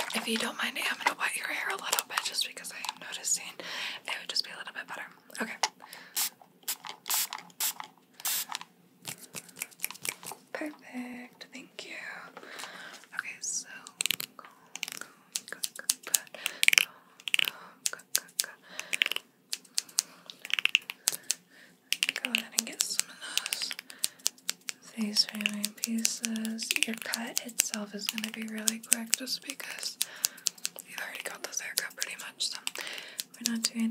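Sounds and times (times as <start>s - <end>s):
spray bottle misting: 6.2s - 10.4s
plastic comb rustling and clicking: 6.7s - 10.4s, 13.8s - 17.5s, 18.1s - 33.8s.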